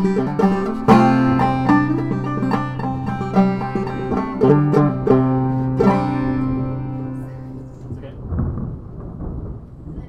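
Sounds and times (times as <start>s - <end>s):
banjo chord ringing: 0.0s - 8.0s
handling thump and rumble: 7.7s - 10.0s.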